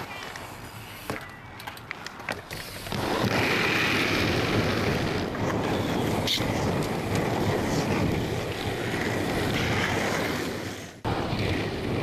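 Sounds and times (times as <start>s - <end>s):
bike clicks and knocks: 0.0s - 3.0s
tyres rolling on concrete: 0.0s - 12.0s
wind on microphone: 2.9s - 12.0s.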